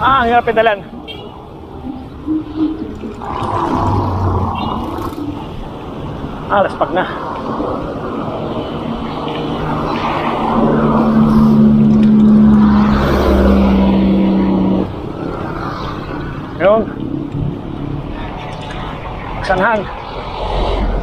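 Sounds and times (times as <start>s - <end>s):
road noise: 0.0s - 21.0s
vehicle engine drone: 0.0s - 21.0s.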